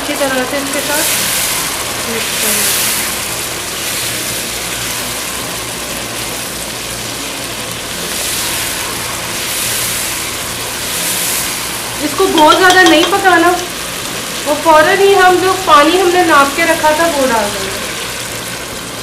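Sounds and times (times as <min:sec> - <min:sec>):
chicken sizzling in a pot: 0:00.0 - 0:19.0
spoon stirring in a pot: 0:12.3 - 0:13.3.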